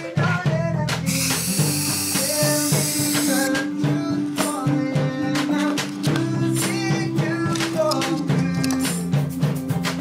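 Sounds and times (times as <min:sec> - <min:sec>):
music: 0:00.0 - 0:10.0
aerosol can spraying hiss: 0:01.1 - 0:03.7.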